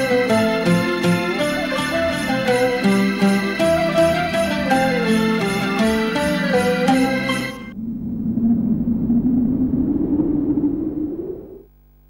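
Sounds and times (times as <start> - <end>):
rumbling whoosh: 7.7 - 11.6.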